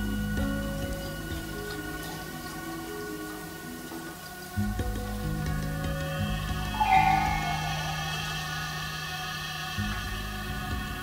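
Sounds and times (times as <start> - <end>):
experimental drone music: 0.0 - 11.0.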